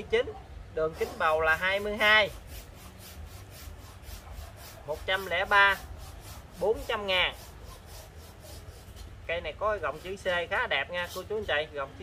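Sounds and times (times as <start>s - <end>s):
pot rubbing and scraping: 0.8s - 12.0s.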